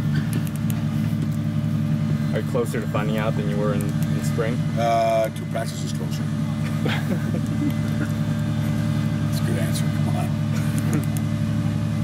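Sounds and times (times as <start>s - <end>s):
low machine drone: 0.0s - 12.0s
man speaking with a laugh: 6.6s - 8.3s.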